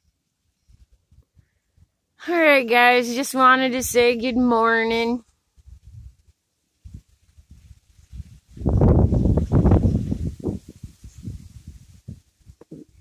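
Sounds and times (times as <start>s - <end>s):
wind buffeting microphone: 3.8s - 13.0s.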